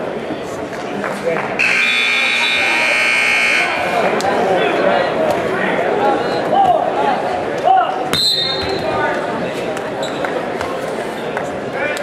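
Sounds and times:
crowd voices: 0.0s - 12.0s
scoreboard buzzer blast: 1.6s - 3.9s.

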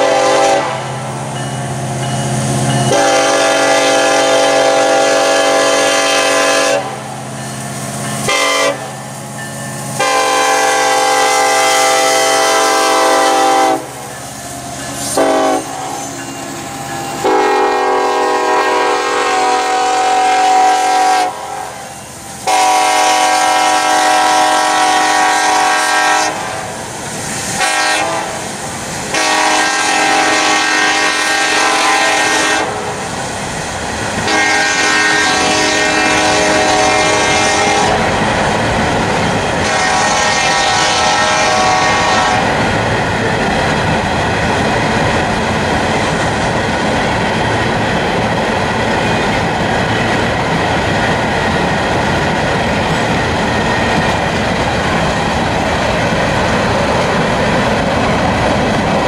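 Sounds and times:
locomotive air horn blasts: 0.0s - 1.0s, 2.9s - 7.0s, 8.2s - 9.0s, 9.9s - 14.0s, 15.1s - 16.2s, 17.2s - 26.7s, 27.6s - 28.5s, 29.1s - 33.0s, 34.2s - 38.1s, 39.6s - 42.6s
rumble of passing freight trains: 0.0s - 59.0s.

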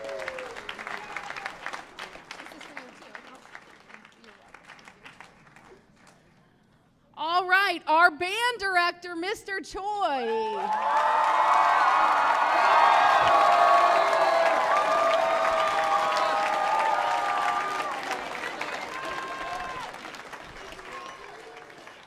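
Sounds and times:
children cheering: 0.0s - 1.8s, 10.3s - 22.0s
audience applause: 0.0s - 6.2s, 10.4s - 22.0s.

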